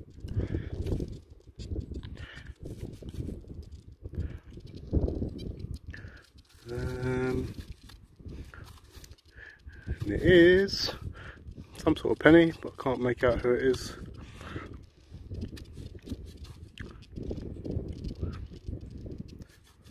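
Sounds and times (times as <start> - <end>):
wind rumble on microphone: 0.0 - 19.9.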